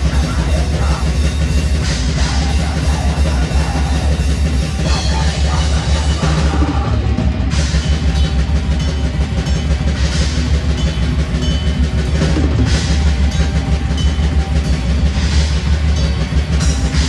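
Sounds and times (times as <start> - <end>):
bass guitar: 0.0 - 17.0
cymbal crashes: 0.0 - 17.0
distorted electric guitars: 0.0 - 17.0
drums: 0.0 - 17.0.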